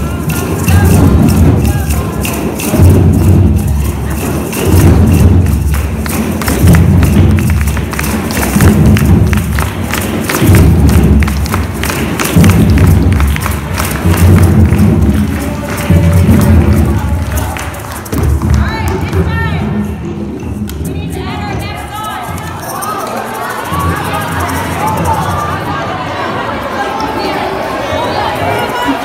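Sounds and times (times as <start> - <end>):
group playing hand drums: 0.0 - 26.0.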